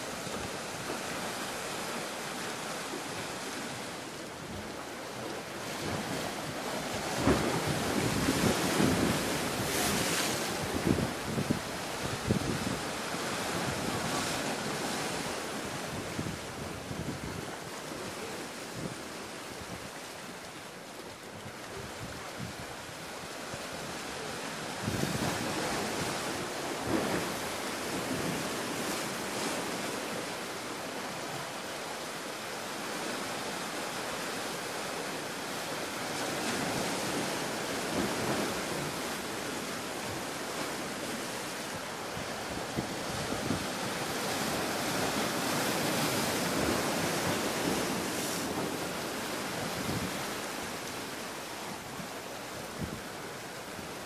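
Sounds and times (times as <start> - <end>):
surf washing against rocks: 0.0 - 54.0
wind buffeting microphone: 5.8 - 14.3, 24.8 - 28.5, 42.1 - 50.6.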